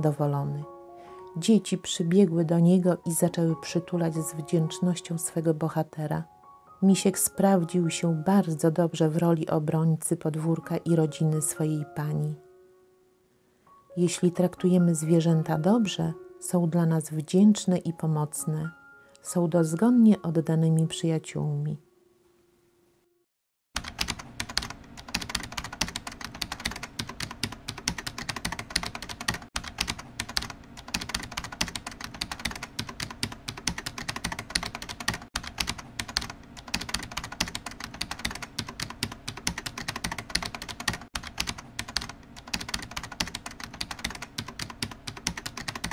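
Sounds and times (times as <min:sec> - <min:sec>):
rapid continuous clicking: 0:23.8 - 0:45.9.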